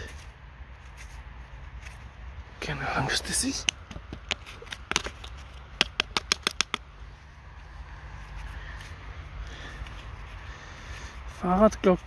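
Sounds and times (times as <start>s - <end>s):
dry soil crackling under hand: 0.0s - 12.0s.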